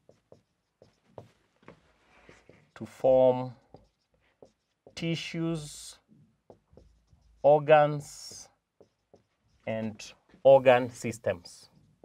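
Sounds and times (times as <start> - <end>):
marker pen writing on whiteboard: 0.0 - 12.0.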